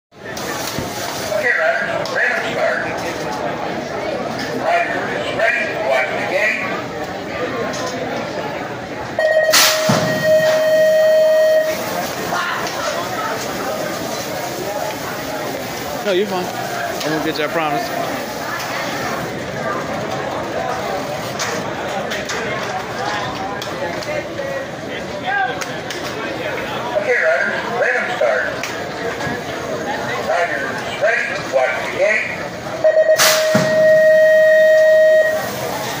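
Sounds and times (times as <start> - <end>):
quick beeps: 9.2 - 11.8, 32.8 - 35.5
quick electronic beeps: 9.2 - 11.8
long steady tone: 9.2 - 12.1, 32.8 - 36.0
metal gate slamming down: 9.4 - 10.8, 33.2 - 34.0
bikes rolling down ramp: 11.8 - 26.9.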